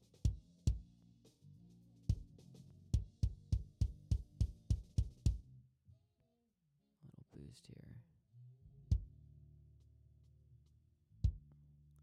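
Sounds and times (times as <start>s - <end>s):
drum kit bleed: 0.0s - 0.9s, 2.1s - 5.4s
kick drum hits: 3.0s - 5.4s, 8.9s - 9.1s.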